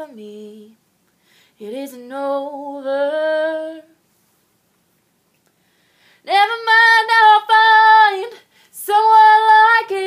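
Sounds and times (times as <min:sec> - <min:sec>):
woman singing unaccompanied: 0:00.0 - 0:00.8, 0:01.6 - 0:04.0, 0:06.2 - 0:10.0
woman breathing: 0:01.1 - 0:01.6, 0:05.5 - 0:06.3, 0:08.4 - 0:08.8.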